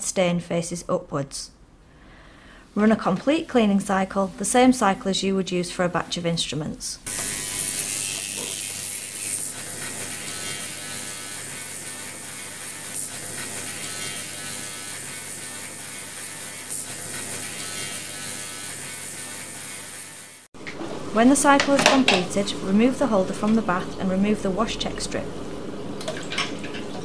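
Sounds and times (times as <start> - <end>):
ultrasonic cleaner hiss and buzz: 7.1 - 23.2.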